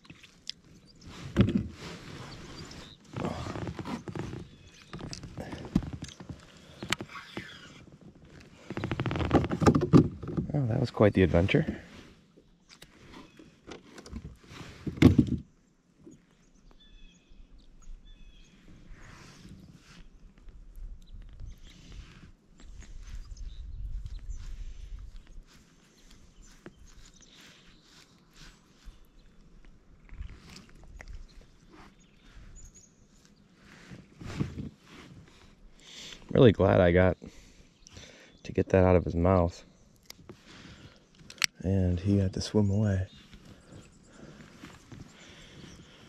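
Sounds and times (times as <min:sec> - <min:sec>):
fishing line handling rustles: 0:22.2 - 0:32.0.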